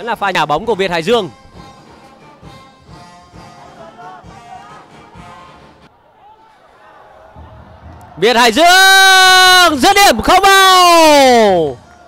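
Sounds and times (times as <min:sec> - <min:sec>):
drum beating steadily: 0:00.6 - 0:05.9, 0:07.2 - 0:09.8
crowd chanting: 0:03.4 - 0:08.3.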